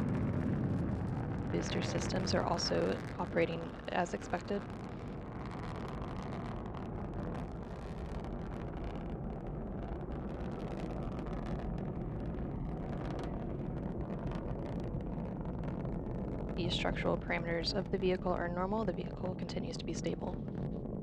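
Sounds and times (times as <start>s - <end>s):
rocket engines rumbling: 0.0s - 21.0s.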